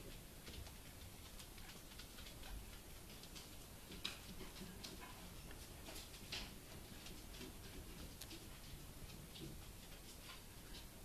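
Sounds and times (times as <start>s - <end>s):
puppies mouthing clicks and smacks: 0.1s - 11.0s.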